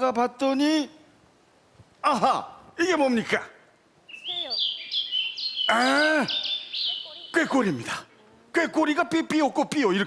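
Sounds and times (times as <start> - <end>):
songbird whistling: 4.1 - 7.5.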